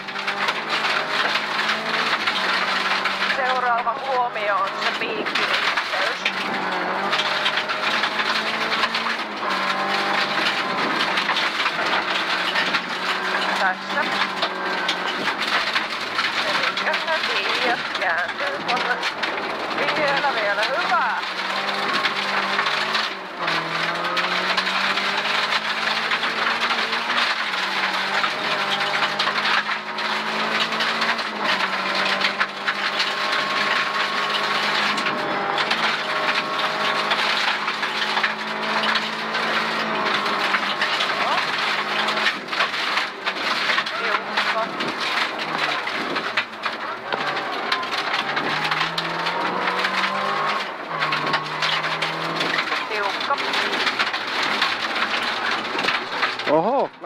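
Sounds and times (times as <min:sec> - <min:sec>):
car engine revving with gear changes: 0:00.0 - 0:57.0
stones clicking against underbody: 0:04.8 - 0:56.9
gravel hissing under tyres: 0:18.9 - 0:56.8.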